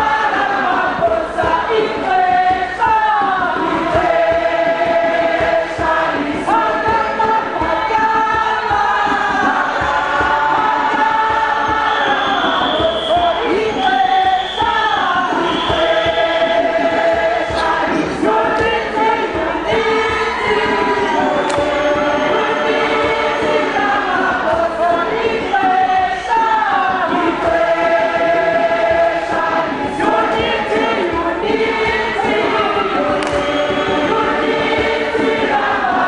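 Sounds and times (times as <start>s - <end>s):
group singing in harmony: 0.0s - 36.0s.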